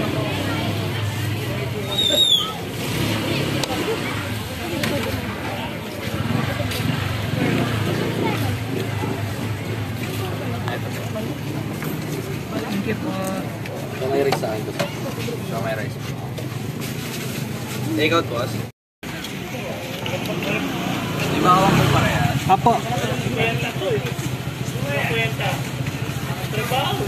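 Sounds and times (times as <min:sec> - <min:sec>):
indistinct talk: 0:00.0 - 0:27.0
low hum of street noise: 0:00.0 - 0:27.0.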